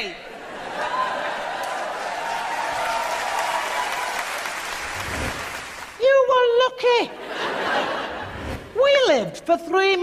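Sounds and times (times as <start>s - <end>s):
audience applauding: 0.9s - 6.0s.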